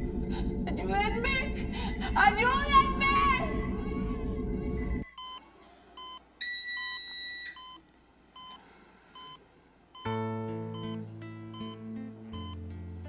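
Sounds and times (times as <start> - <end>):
loud sustained sound: 0.0 - 5.0
longer higher monitor tone: 0.0 - 5.1, 10.0 - 13.0
patient monitor beeping: 0.0 - 7.8, 8.4 - 12.8.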